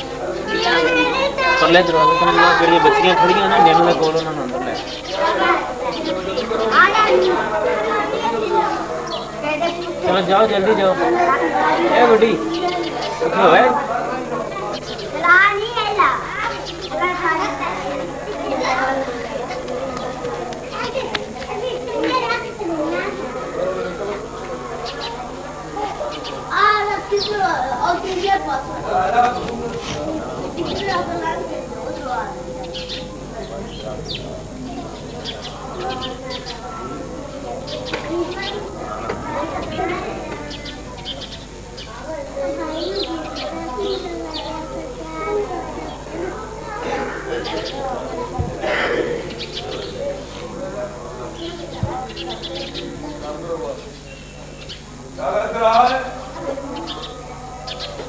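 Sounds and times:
children and adults talking: 0.0s - 58.0s
small birds chirping: 0.0s - 58.0s.

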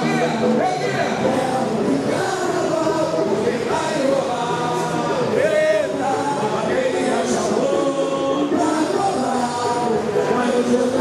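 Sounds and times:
crowd singing samba: 0.0s - 11.0s.

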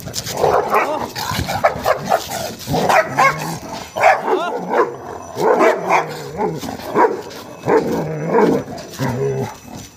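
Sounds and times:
dogs barking: 0.3s - 9.7s.

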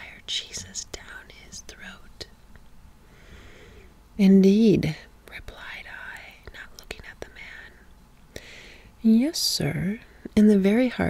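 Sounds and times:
breathy whispering: 0.0s - 2.3s, 4.9s - 7.8s.

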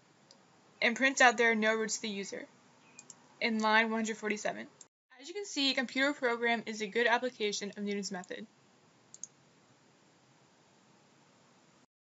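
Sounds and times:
faint steady hiss: 0.0s - 11.9s
computer mouse clicking: 2.8s - 3.8s, 9.1s - 9.4s.

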